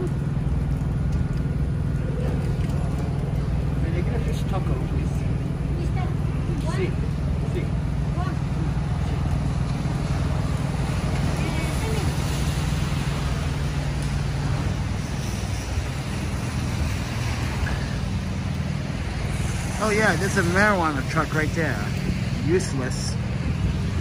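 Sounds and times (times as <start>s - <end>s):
rain hiss: 0.0s - 24.0s
traffic on wet streets: 0.0s - 24.0s
truck motor humming: 0.0s - 24.0s.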